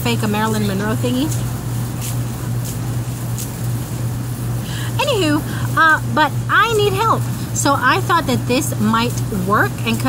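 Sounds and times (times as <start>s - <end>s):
air conditioner unit humming: 0.0s - 10.0s.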